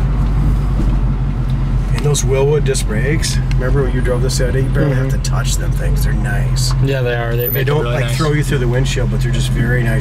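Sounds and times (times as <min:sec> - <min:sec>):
car engine drone: 0:00.0 - 0:10.0
road noise: 0:00.0 - 0:10.0.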